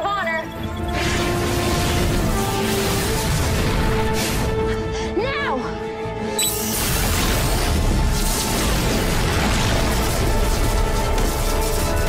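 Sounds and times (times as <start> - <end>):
dramatic soundtrack music: 0.0 - 12.0.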